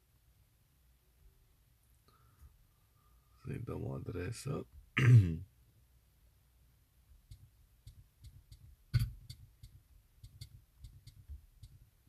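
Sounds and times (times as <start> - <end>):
fingertip taps on touchscreen: 7.3 - 11.8.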